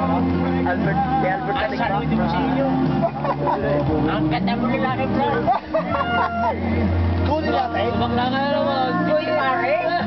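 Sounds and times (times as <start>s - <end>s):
men talking and laughing: 0.0s - 10.0s.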